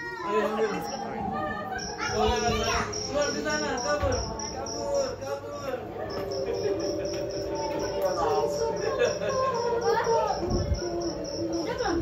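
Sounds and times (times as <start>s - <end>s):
crickets chirping: 0.2s - 12.0s
low steady drone: 5.9s - 12.0s.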